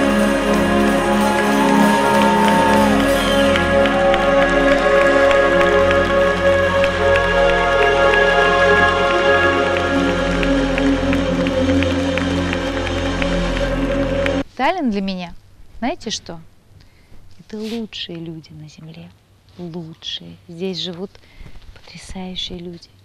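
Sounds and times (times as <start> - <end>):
live pop band playing: 0.0 - 14.4.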